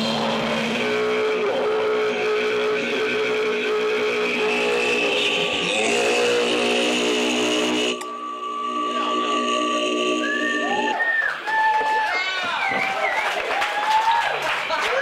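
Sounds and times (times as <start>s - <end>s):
distorted electric guitar feedback: 0.0s - 11.0s.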